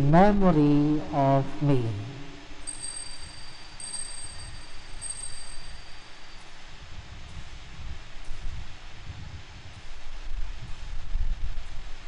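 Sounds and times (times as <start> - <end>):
altar bell ringing: 2.6 - 6.7.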